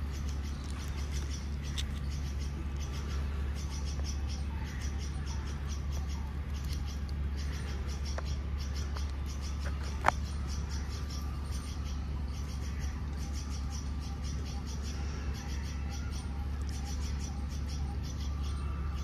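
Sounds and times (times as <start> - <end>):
squirrel chirping: 0.0 - 19.0
steady low hum: 0.0 - 19.0.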